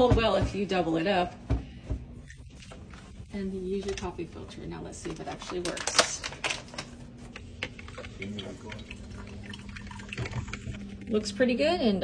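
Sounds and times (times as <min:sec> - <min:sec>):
coffee maker low hum: 0:00.0 - 0:12.0
coffee dripping into carafe: 0:07.6 - 0:11.2.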